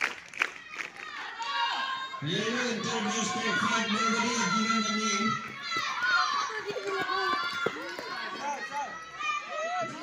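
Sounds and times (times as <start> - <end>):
children shouting: 0.5 - 10.0.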